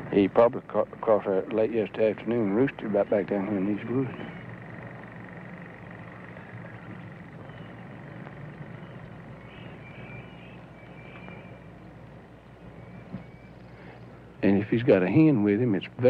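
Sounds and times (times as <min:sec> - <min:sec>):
low hum and hiss: 0:00.0 - 0:16.0
faint bird chirps: 0:05.8 - 0:14.4.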